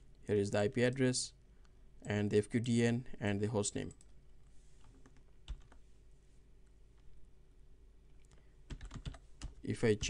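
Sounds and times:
computer keyboard typing: 4.9 - 5.8, 8.7 - 9.6.

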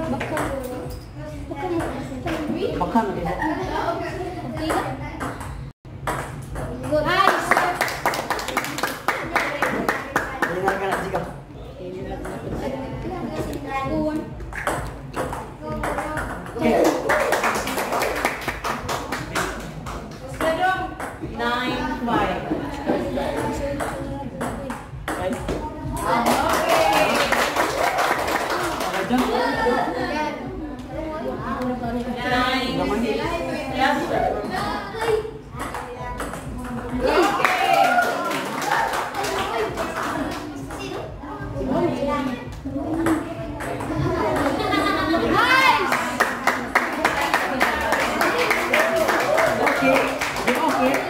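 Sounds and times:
spectators cheering and clapping: 16.6 - 18.8, 26.1 - 29.5, 37.0 - 40.0, 45.4 - 51.0.

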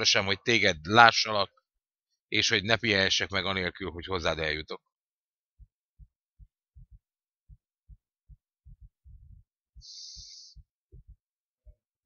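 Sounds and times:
faint low thumps: 5.6 - 11.8.

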